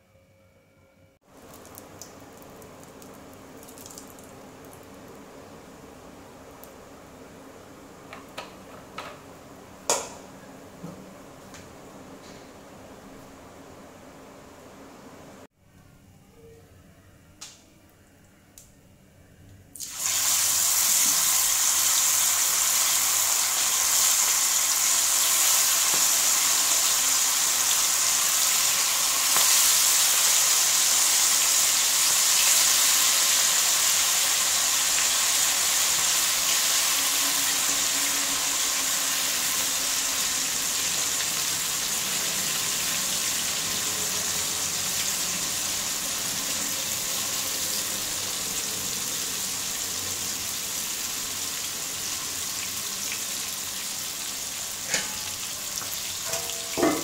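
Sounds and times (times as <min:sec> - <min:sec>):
chicken deep-frying in oil: 0:01.2 - 0:12.1, 0:19.8 - 0:57.0.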